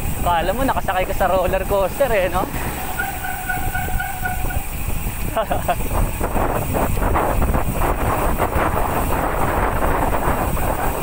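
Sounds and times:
bicycle rolling on concrete: 0.0 - 11.0
wind on microphone: 0.0 - 11.0
steady whine: 0.7 - 5.8
person laughing: 5.3 - 5.9.

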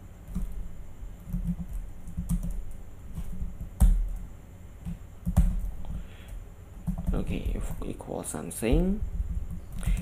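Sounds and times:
typing on keyboard: 0.2 - 0.6, 1.2 - 6.0, 6.8 - 7.9, 9.1 - 10.0.

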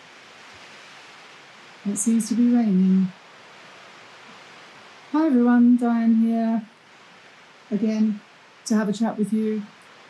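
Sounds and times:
rain falling: 0.0 - 10.0.

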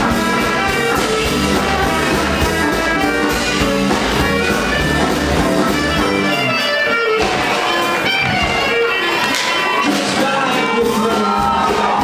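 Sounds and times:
clarinet: 0.0 - 10.0
drums: 0.0 - 12.0
upright bass: 0.0 - 12.0.

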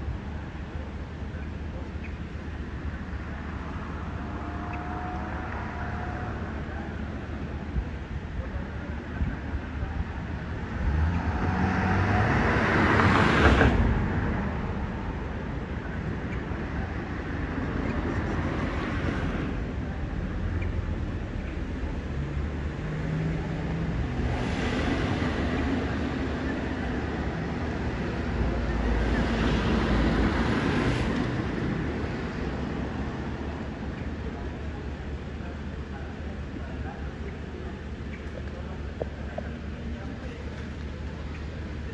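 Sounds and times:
outdoor street noise: 0.0 - 41.9.

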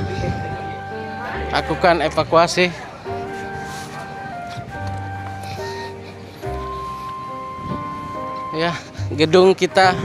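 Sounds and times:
slow sustained background music: 0.0 - 10.0.

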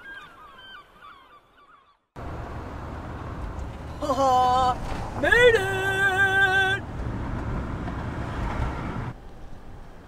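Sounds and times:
road and engine noise in van: 2.2 - 10.0.

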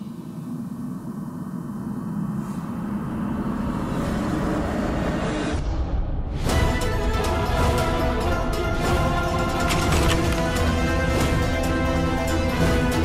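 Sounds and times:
low rumbling drone: 0.0 - 6.4.

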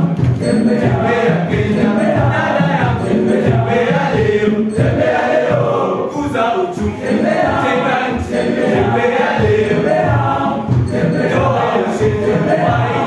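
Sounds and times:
choir singing: 0.0 - 13.0.

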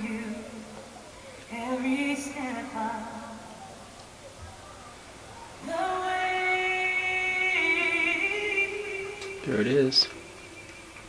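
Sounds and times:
woman singing long-held notes: 0.0 - 3.8, 5.5 - 9.5.

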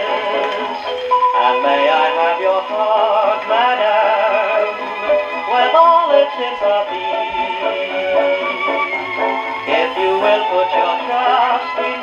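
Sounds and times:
dance-band record on gramophone: 0.0 - 12.0.

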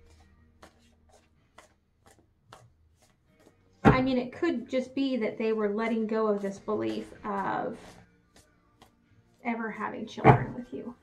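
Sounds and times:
cards being shuffled: 0.1 - 3.6.

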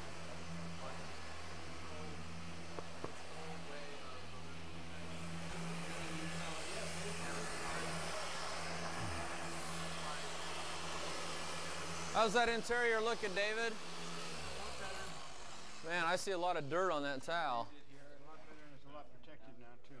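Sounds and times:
car polisher motor hum: 0.0 - 16.6.

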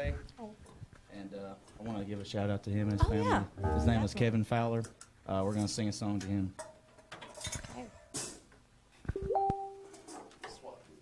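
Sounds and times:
guitar string note sliding up: 3.6 - 4.2.

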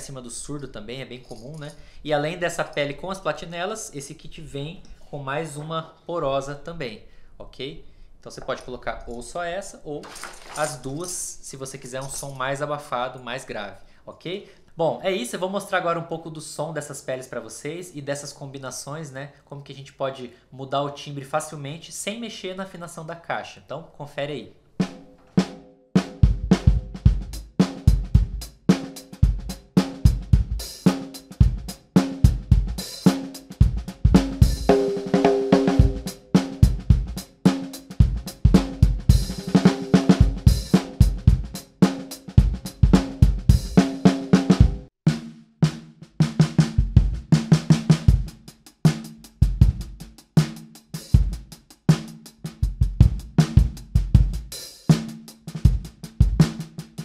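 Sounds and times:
snare drum groove: 24.8 - 57.0
kick drum: 26.2 - 28.4, 30.1 - 30.6, 32.3 - 32.8, 35.8 - 37.2, 38.0 - 39.4, 40.2 - 41.6, 42.4 - 43.8, 46.8 - 47.3, 48.0 - 48.4, 49.4 - 50.0, 52.7 - 54.5
cymbals: 34.1 - 45.3.

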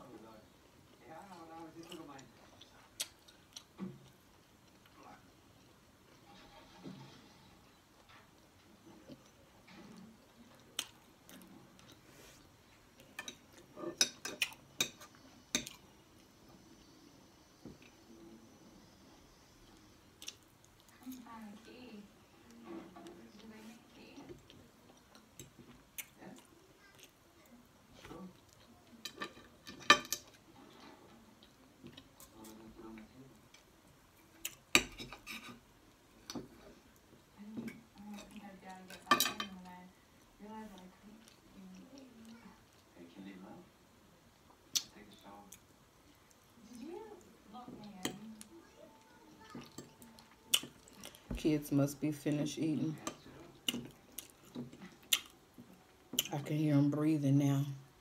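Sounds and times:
cutlery scraping on a plate: 29.0 - 31.0, 34.8 - 35.6, 37.7 - 39.6.

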